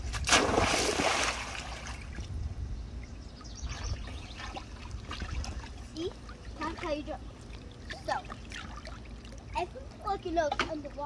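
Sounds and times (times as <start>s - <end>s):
water sloshing and lapping: 0.0s - 2.4s, 3.4s - 11.0s
child splashing into pool: 0.1s - 2.1s.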